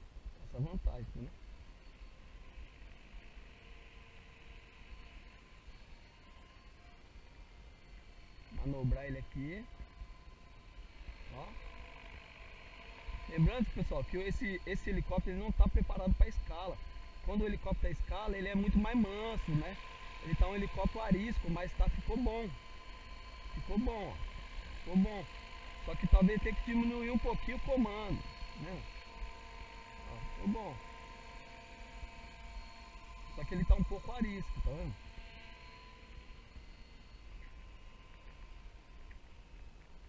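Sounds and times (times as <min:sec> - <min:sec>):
model helicopter motor whine: 0:00.0 - 0:40.0.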